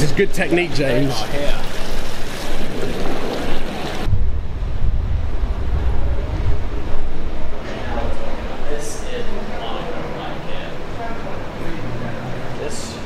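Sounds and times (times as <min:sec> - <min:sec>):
wind buffeting microphone: 0:01.8 - 0:09.6.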